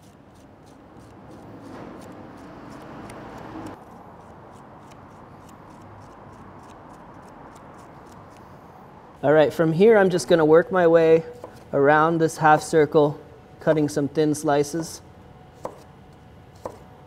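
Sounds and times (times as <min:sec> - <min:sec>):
knife scraping cucumber seeds: 0:00.0 - 0:08.4.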